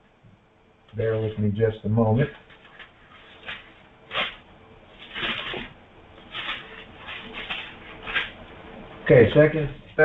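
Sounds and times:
pages flipping: 2.5 - 4.4, 5.0 - 8.4.

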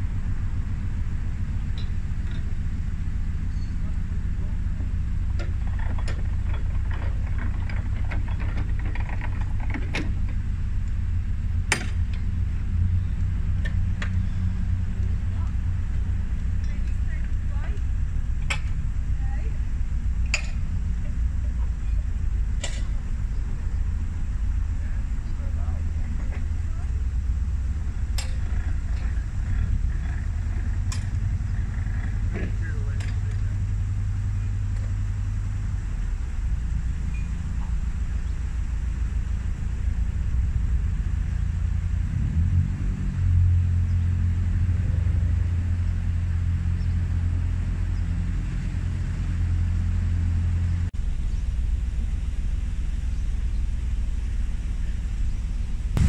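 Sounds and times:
diesel engine throbbing: 0.0 - 56.0.

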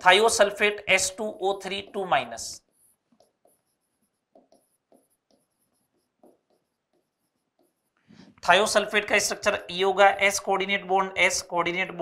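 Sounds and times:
marker writing on whiteboard: 1.3 - 10.4.

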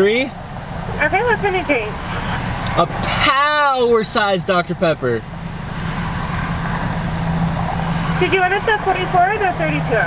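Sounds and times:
car engine idling: 0.0 - 10.0
outdoor noise: 0.0 - 10.0.

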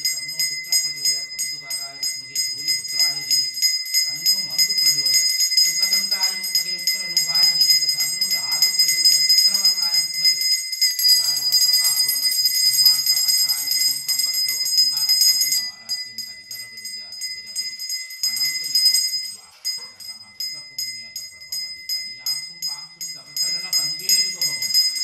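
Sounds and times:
man chanting: 0.0 - 25.0
temple bell ringing rapidly: 0.0 - 25.0.

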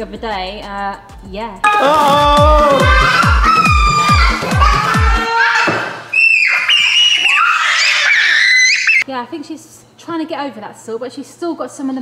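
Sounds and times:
small child squealing: 2.2 - 9.0.

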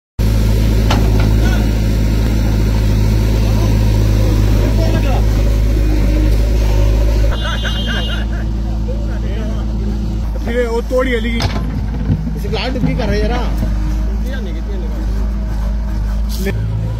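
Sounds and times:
diesel engine running under load: 0.2 - 16.9.

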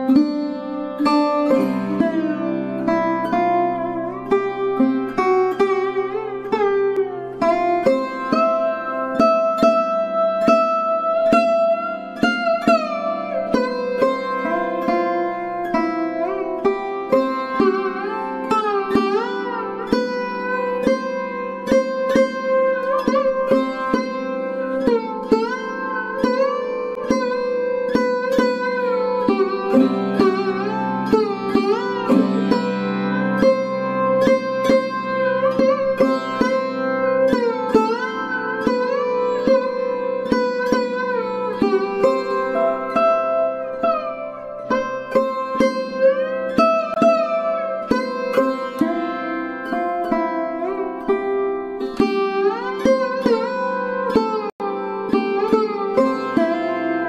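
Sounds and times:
plucked string melody: 0.0 - 57.0.

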